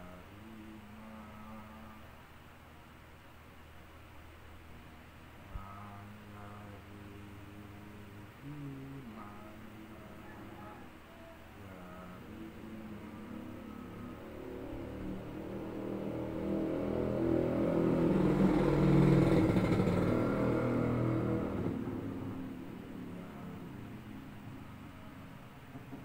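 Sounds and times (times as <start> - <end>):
motor vehicle driving past: 12.1 - 26.0.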